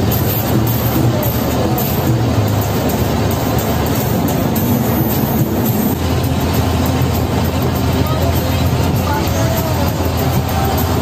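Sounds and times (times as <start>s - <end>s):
bus engine droning: 0.0s - 11.0s
road noise: 0.0s - 11.0s.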